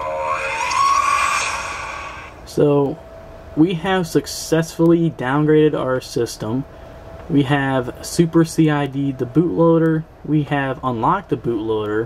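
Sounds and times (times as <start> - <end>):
robotic electronic voice tone: 0.0 - 2.2.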